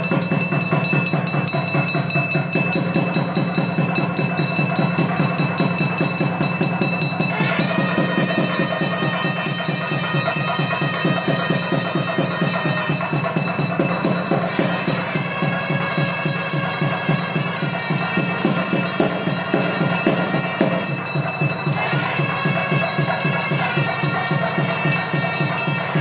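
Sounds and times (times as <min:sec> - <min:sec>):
bells ringing: 0:00.0 - 0:26.0
temple drums beating fast: 0:00.0 - 0:26.0.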